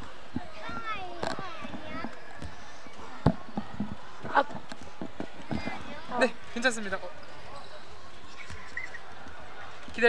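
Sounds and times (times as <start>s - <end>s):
crowd chatter: 0.0s - 10.0s
child's voice: 0.4s - 2.2s.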